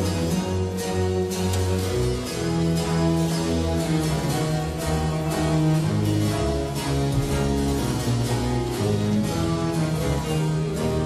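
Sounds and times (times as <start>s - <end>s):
bowed strings: 0.0s - 11.0s
cello and bass line: 0.0s - 11.0s
harpsichord plucking chords: 0.0s - 11.0s.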